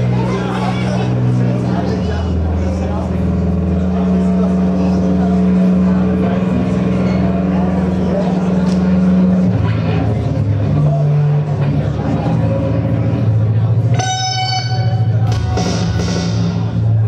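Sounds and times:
distorted electric instrument: 0:00.0 - 0:17.0.

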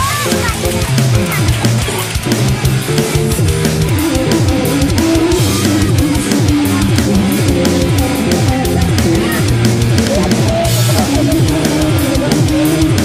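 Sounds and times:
guitar and drum kit music: 0:00.0 - 0:13.0.

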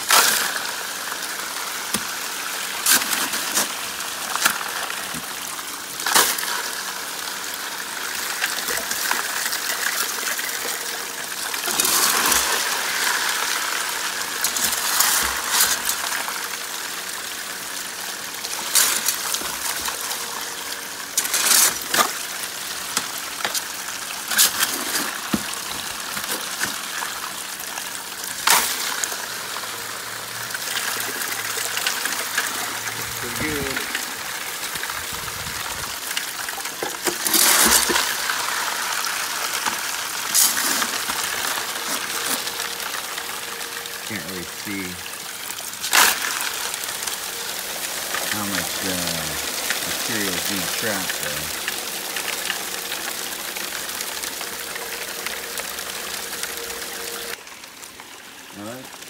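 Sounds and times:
water gushing onto gravel: 0:00.0 - 0:59.0.

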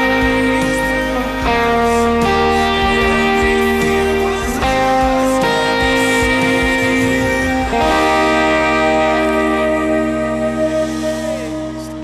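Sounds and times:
electric guitar chords with reverb: 0:00.0 - 0:12.0.

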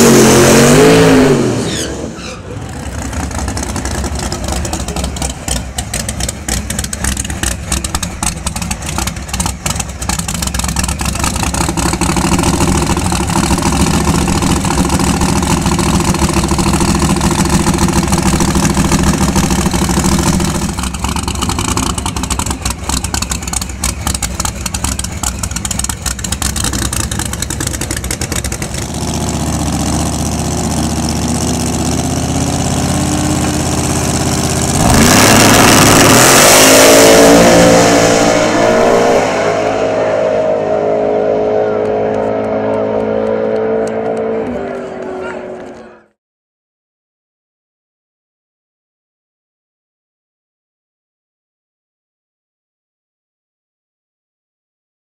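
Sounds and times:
car launching at full throttle: 0:00.0 - 0:02.8, 0:33.1 - 0:45.8
supercharged car engine running: 0:02.6 - 0:46.1.

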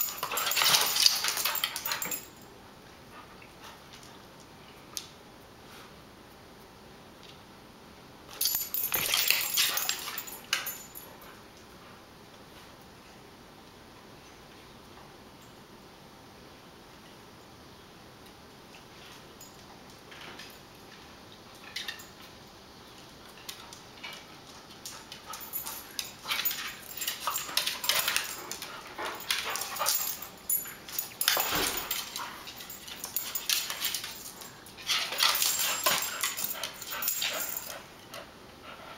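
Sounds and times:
dogs play-fighting: 0:00.0 - 0:02.4, 0:08.3 - 0:12.8, 0:18.9 - 0:38.9
collar tags jingling: 0:00.0 - 0:02.5, 0:08.3 - 0:11.4, 0:23.4 - 0:38.2.

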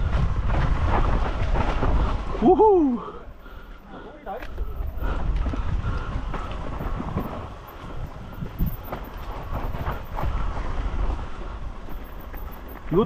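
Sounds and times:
bike clattering over stones: 0:00.0 - 0:02.4, 0:04.3 - 0:13.0
bike tyre and frame rumble: 0:00.0 - 0:13.0.

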